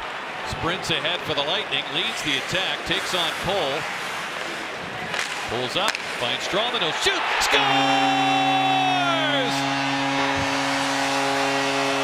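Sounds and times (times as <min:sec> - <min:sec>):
crowd cheering: 0:00.0 - 0:02.2, 0:06.5 - 0:12.0
goal horn low tone: 0:07.6 - 0:12.0.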